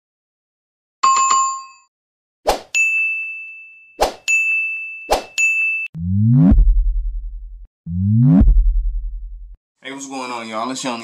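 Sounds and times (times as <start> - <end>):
rising synth sweep: 6.0 - 9.5
deep pulsing bass hit: 6.0 - 9.6.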